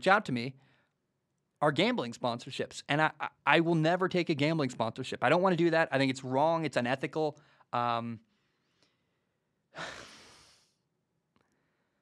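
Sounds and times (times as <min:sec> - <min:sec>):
man sighing: 0:09.7 - 0:10.7.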